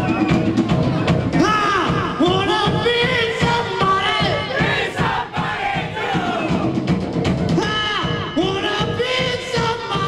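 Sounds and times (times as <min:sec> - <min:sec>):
live rock band playing: 0:00.0 - 0:04.7, 0:05.9 - 0:10.0
crowd chanting: 0:04.1 - 0:06.7.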